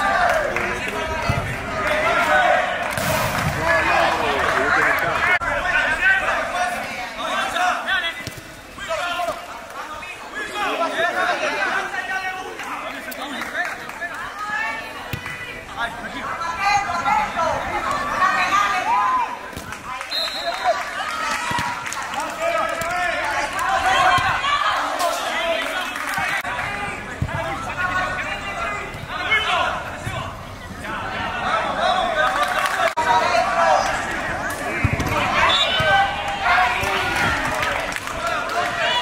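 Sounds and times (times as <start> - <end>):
voices calling out and talking: 0.0 - 39.0.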